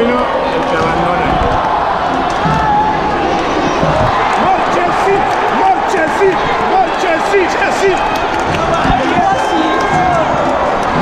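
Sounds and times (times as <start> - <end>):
stadium crowd shouting and cheering: 0.0 - 11.0.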